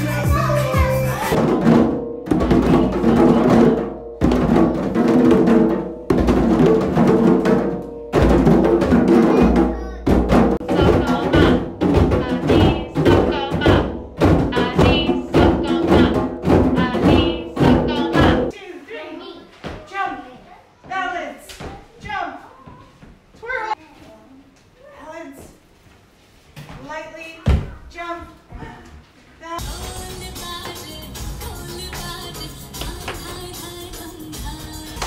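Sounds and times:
children's voices: 0:00.2 - 0:01.4, 0:09.1 - 0:11.6, 0:18.0 - 0:20.9
djembe hand drums: 0:00.2 - 0:18.5
dance music with steady beat: 0:10.6 - 0:18.5, 0:29.6 - 0:35.0.

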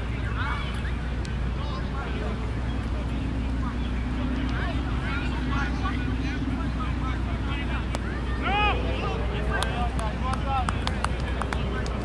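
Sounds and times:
distant voices: 0:00.0 - 0:12.0
low hum: 0:00.0 - 0:12.0
street traffic rumble: 0:00.0 - 0:12.0.

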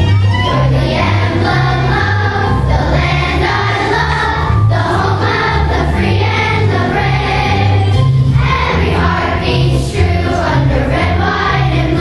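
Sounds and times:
instrumental accompaniment with bass: 0:00.0 - 0:12.0
children's choir singing: 0:00.4 - 0:12.0.

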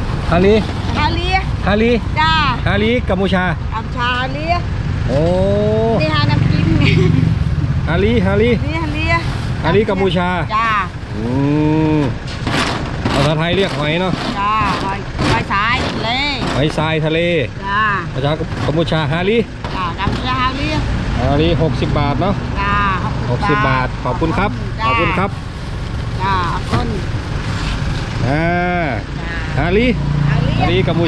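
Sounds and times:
low hum of street noise: 0:00.0 - 0:31.0
voices talking: 0:00.3 - 0:12.3, 0:13.0 - 0:31.0.

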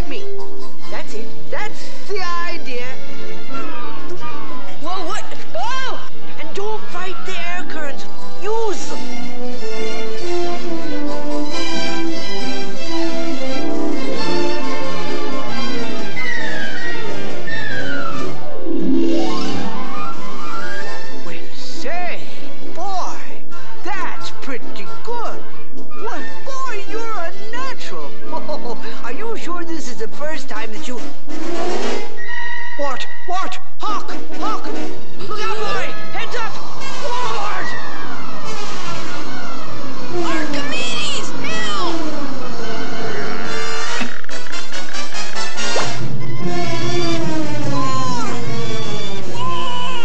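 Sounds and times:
orchestral film score: 0:00.0 - 0:50.0
rising and falling chirps: 0:16.0 - 0:21.2.

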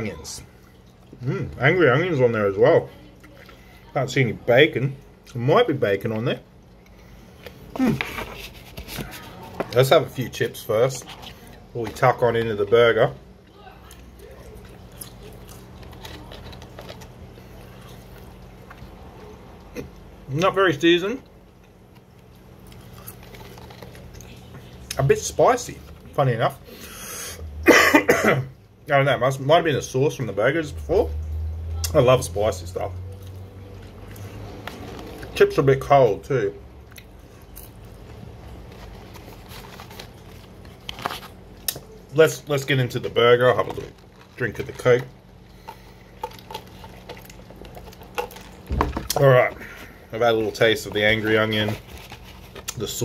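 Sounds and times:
man chewing: 0:00.4 - 0:01.6, 0:13.3 - 0:20.2, 0:21.2 - 0:24.4, 0:36.8 - 0:42.0, 0:45.1 - 0:50.2, 0:50.9 - 0:52.8.

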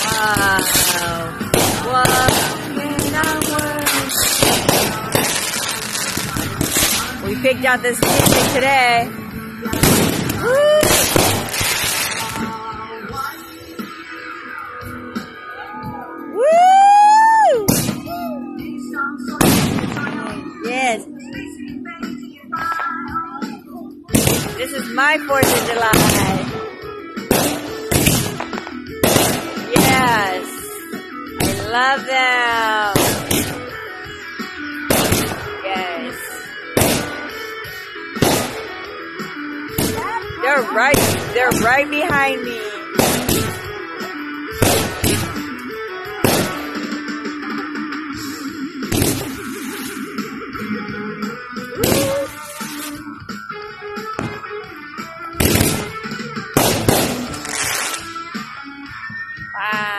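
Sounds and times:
fireworks crackling and hissing: 0:00.0 - 0:13.8, 0:24.1 - 0:26.6, 0:27.3 - 0:33.9, 0:34.8 - 0:39.0, 0:39.7 - 0:53.5, 0:54.1 - 0:58.4
person whooping: 0:10.4 - 0:11.1, 0:15.6 - 0:18.6, 0:51.7 - 0:52.5.

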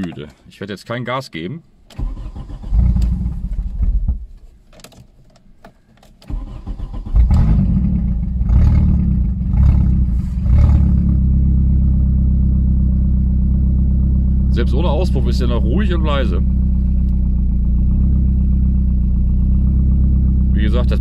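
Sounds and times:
car engine starting and idling: 0:01.8 - 0:21.0.

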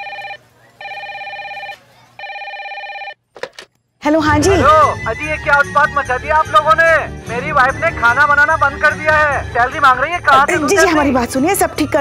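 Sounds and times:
desk telephone ringing: 0:00.0 - 0:03.2.

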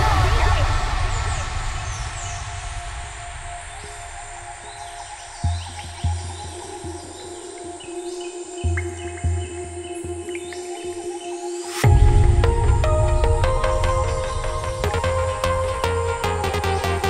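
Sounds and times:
low kick drum hits: 0:11.8 - 0:14.9.

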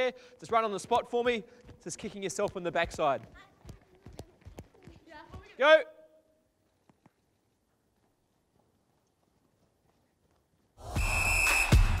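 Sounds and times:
high whistle-like tone: 0:10.8 - 0:12.0.

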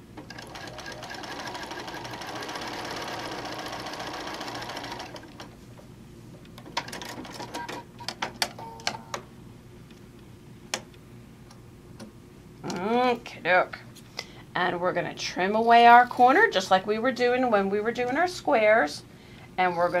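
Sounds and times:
sewing machine stitching: 0:00.3 - 0:05.5.

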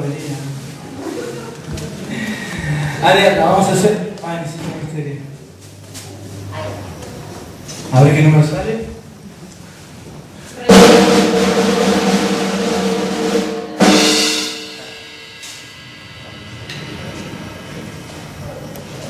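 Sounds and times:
loud drum hit ringing: 0:10.7 - 0:18.1
drum roll on drum kit: 0:10.7 - 0:19.0.

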